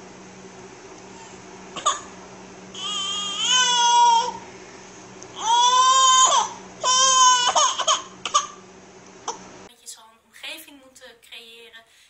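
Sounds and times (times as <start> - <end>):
baby crying: 1.8 - 2.1, 2.8 - 4.4, 5.4 - 8.6.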